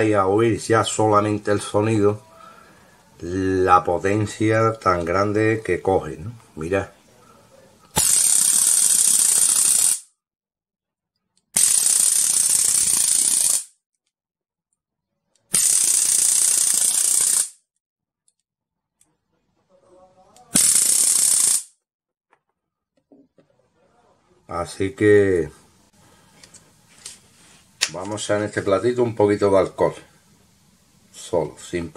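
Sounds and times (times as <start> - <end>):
electric arc crackling: 7.9 - 10.0, 11.6 - 13.7, 15.5 - 17.6, 20.5 - 21.7.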